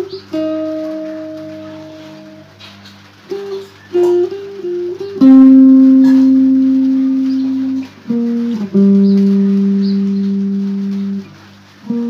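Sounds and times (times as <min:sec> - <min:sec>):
guitar note ringing: 0:00.0 - 0:12.0.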